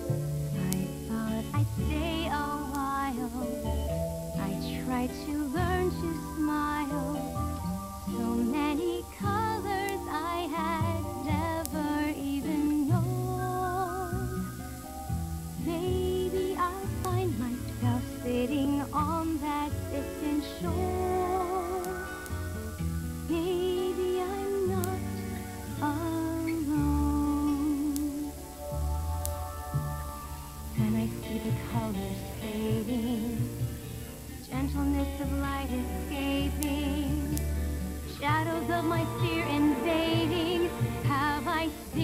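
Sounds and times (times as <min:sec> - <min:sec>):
instrumental accompaniment: 0:00.0 - 0:42.0
woman singing with vibrato: 0:01.1 - 0:03.8, 0:04.4 - 0:14.4, 0:15.6 - 0:22.3, 0:23.3 - 0:28.5, 0:30.7 - 0:42.0
person humming: 0:23.3 - 0:28.4, 0:38.2 - 0:42.0.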